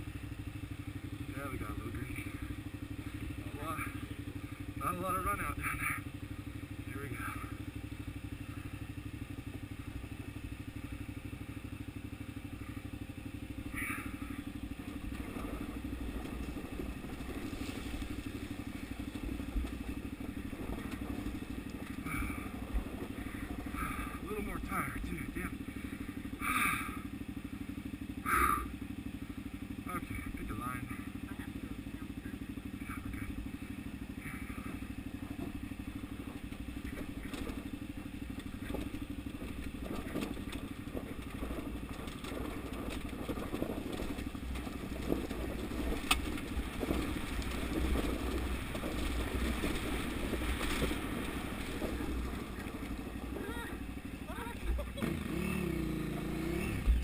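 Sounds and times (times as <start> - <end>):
motorcycle engine at low revs: 0.0 - 57.0
bike knocking over rocks: 35.2 - 55.2.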